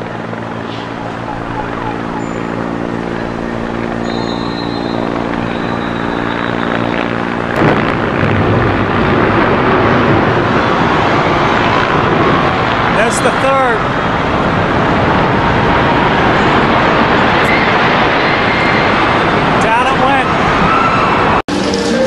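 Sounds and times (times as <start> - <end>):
helicopter rotor hum: 0.0 - 22.0
loud rushing noise: 0.0 - 22.0.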